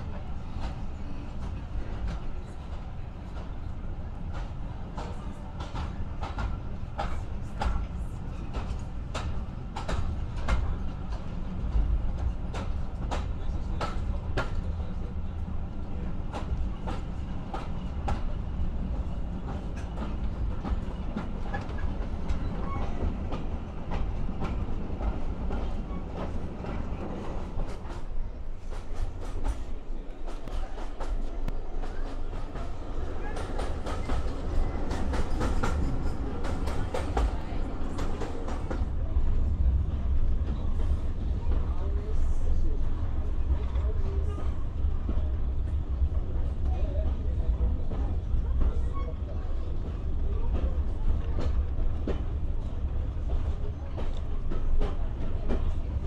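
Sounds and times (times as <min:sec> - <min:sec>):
train wheels rumbling on track: 0:00.0 - 0:56.0.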